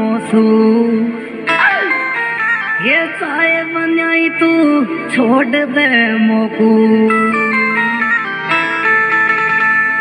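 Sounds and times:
person singing: 0:00.0 - 0:02.2, 0:02.8 - 0:08.2
folk song with sliding melody: 0:00.0 - 0:10.0.

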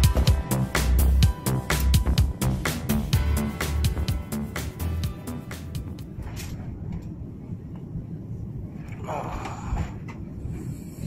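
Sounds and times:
airliner engines rumbling in cabin: 0:05.4 - 0:11.0.

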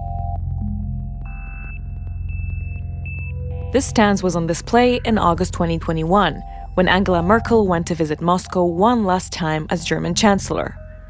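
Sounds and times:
low synth drone: 0:00.0 - 0:11.0.

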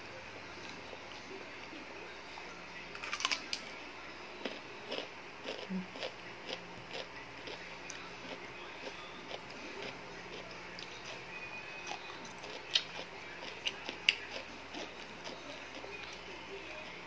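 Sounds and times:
chewing with crunches: 0:02.9 - 0:03.8, 0:04.4 - 0:17.0.

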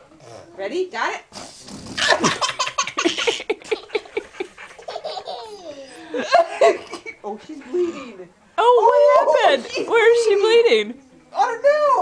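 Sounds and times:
toddler laughing: 0:02.1 - 0:06.2.

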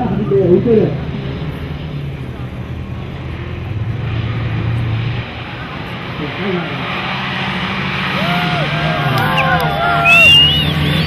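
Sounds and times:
racing vehicle engine drone: 0:00.0 - 0:11.0.

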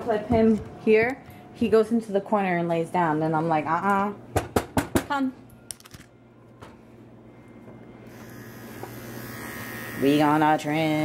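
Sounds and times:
electric clippers buzzing: 0:08.1 - 0:11.0.

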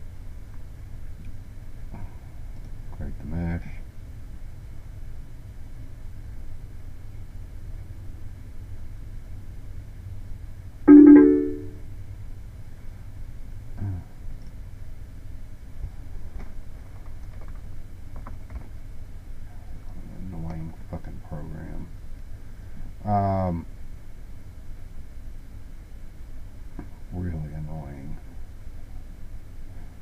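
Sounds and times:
low steady hum: 0:00.0 - 0:16.8
computer notification chime: 0:10.9 - 0:11.8.

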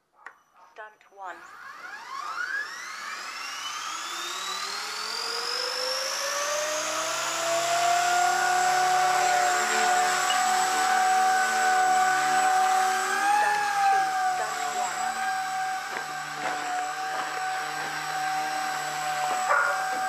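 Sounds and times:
rc helicopter motor whine: 0:01.2 - 0:20.0.

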